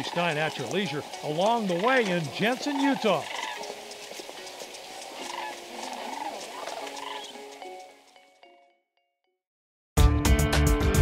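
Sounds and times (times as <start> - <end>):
cranes rattling calls: 0.0 - 8.2
steady music tones: 0.0 - 8.6.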